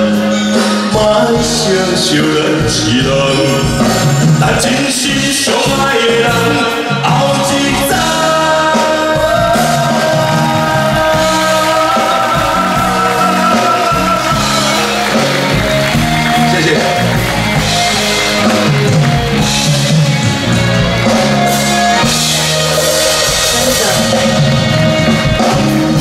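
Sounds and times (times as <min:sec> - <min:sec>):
live band playing pop ballad: 0:00.0 - 0:26.0
person singing: 0:00.0 - 0:26.0.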